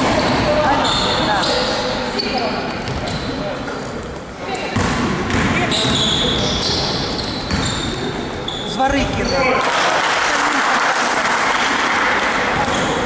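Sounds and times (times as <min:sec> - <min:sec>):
basketball bouncing on court: 0:04.7 - 0:08.1, 0:08.8 - 0:10.1, 0:11.2 - 0:13.0.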